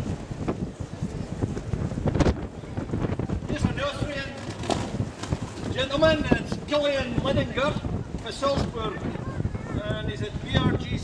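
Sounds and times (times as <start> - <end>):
outdoor crowd voices: 0.0 - 11.0
wind rumble on microphone: 0.0 - 11.0.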